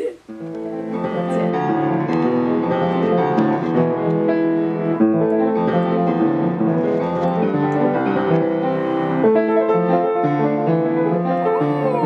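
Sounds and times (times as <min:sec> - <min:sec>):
piano chords played slowly: 0:00.0 - 0:12.0.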